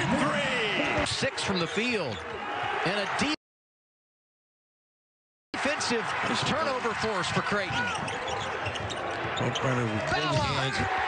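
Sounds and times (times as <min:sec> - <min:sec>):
commentator talking: 0:09.6 - 0:10.9.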